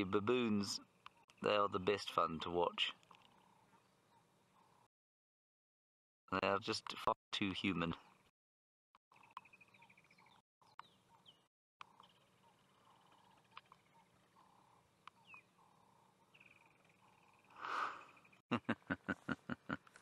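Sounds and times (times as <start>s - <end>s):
bird trills: 9.2s - 18.4s.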